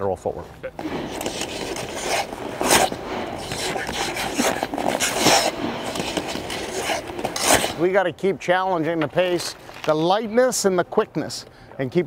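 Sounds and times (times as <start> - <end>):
skate blades scraping ice: 0.8 - 7.9.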